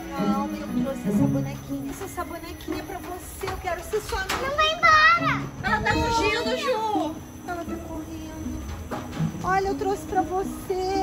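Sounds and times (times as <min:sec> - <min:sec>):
children shouting and crying out: 0:02.4 - 0:07.4.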